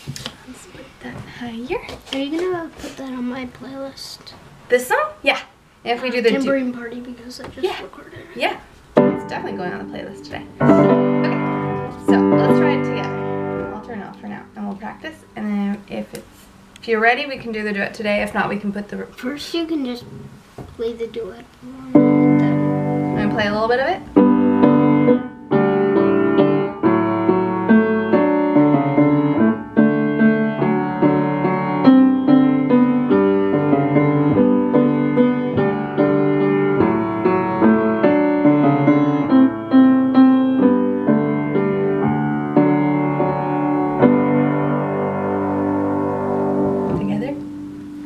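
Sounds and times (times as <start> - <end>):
piano duet: 6.7 - 15.4, 21.7 - 48.0.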